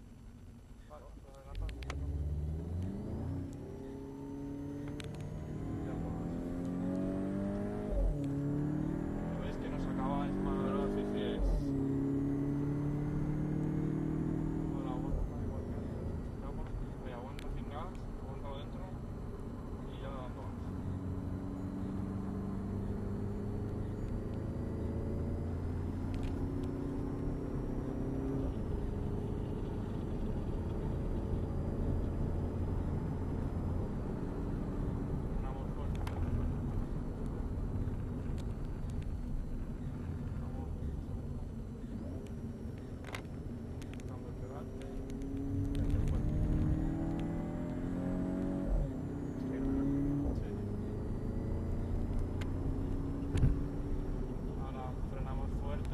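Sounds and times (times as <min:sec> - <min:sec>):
car engine accelerating: 0:00.0 - 0:55.9.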